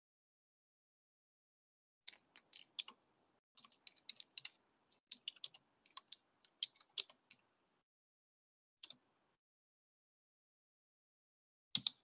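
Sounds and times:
computer keyboard typing: 2.1s - 3.0s, 3.6s - 7.4s.

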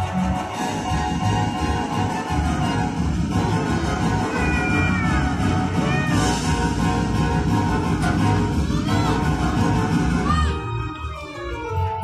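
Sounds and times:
background music: 0.0s - 12.0s
cat meowing: 4.3s - 6.4s.

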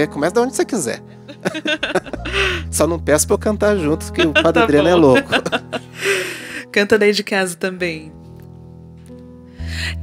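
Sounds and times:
soft instrumental band music: 0.0s - 6.6s.

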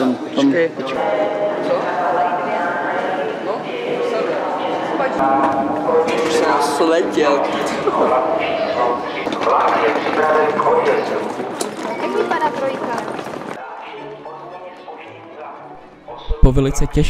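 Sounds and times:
background music: 0.0s - 12.4s, 13.6s - 17.0s
indistinct voices talking: 0.0s - 17.0s.

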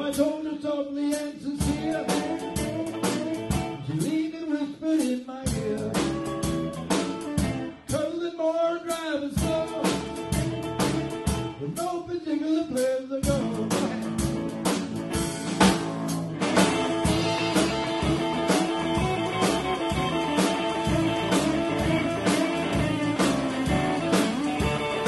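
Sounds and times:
steady drum beat: 1.1s - 4.3s, 5.0s - 8.2s, 8.9s - 12.1s, 12.7s - 25.0s
electric bass: 1.5s - 4.1s, 5.5s - 8.0s, 9.4s - 11.8s, 13.2s - 25.0s
electric guitar lead bending notes: 1.6s - 4.0s, 5.6s - 7.9s, 9.4s - 11.7s, 13.3s - 25.0s
keyboard: 13.3s - 25.0s.

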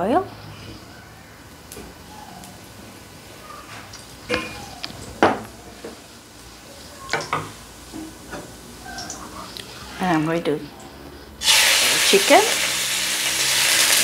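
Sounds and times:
oil hissing in a wok: 11.4s - 14.0s.

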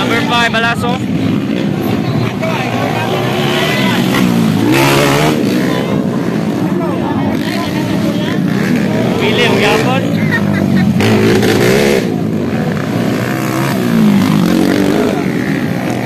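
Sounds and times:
dirt bike engine revving: 0.0s - 16.0s.

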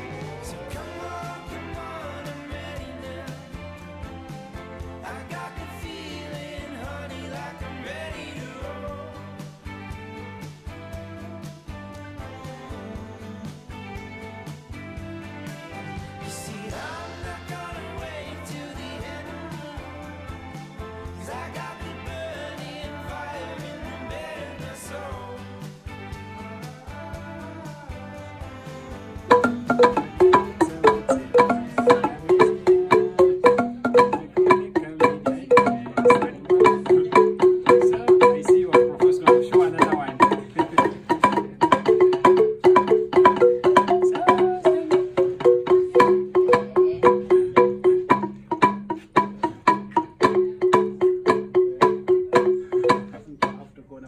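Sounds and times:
wooden xylophone played with mallets: 29.3s - 53.8s.

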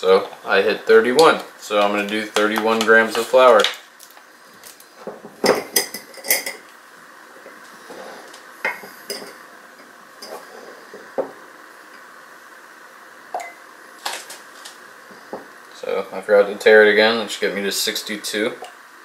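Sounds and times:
glassware and utensils clinking: 5.4s - 6.6s.

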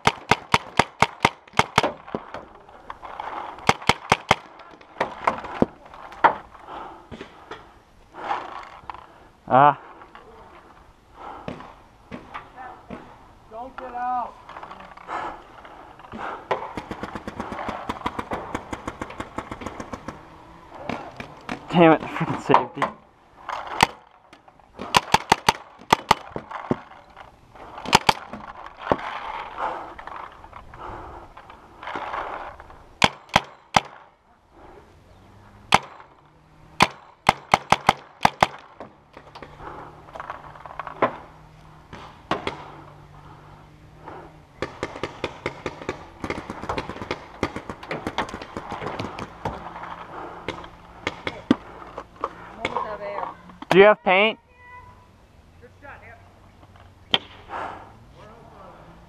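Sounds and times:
paintball markers firing: 0.0s - 2.4s, 3.3s - 5.7s, 16.2s - 23.0s, 24.8s - 27.0s, 27.6s - 29.1s, 33.0s - 34.0s, 36.8s - 39.9s, 44.6s - 52.8s
paintballs hitting wooden bunkers: 0.0s - 9.2s, 9.9s - 34.1s, 35.6s - 53.8s, 56.7s - 57.6s.

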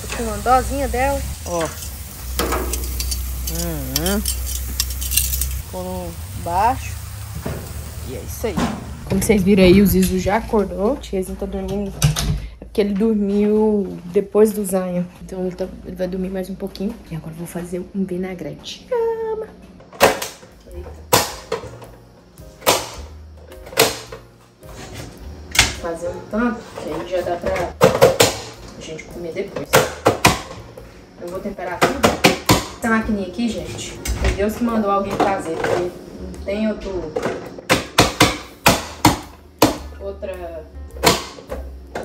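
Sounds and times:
background music: 0.0s - 7.3s, 19.6s - 42.0s.

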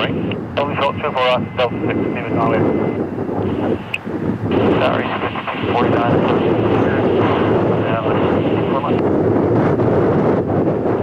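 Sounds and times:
jet engines running: 0.0s - 11.0s
wind on microphone: 0.0s - 11.0s.

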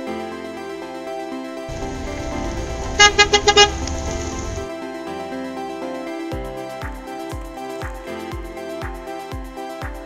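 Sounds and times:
background music: 0.0s - 10.0s
car engine rumble: 1.7s - 4.7s
car horn toots: 1.7s - 4.7s.

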